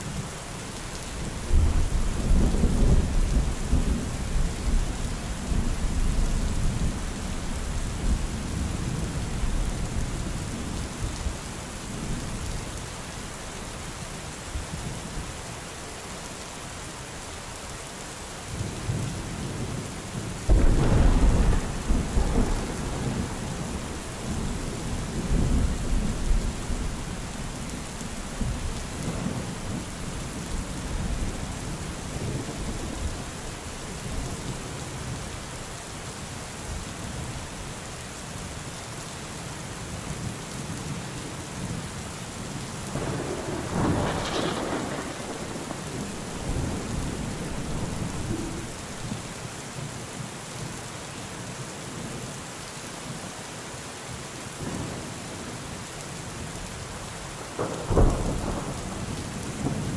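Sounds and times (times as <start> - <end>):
steady rain falling: 0.0 - 59.9
thunder rumbling: 20.5 - 33.2, 42.9 - 49.3, 57.6 - 59.9.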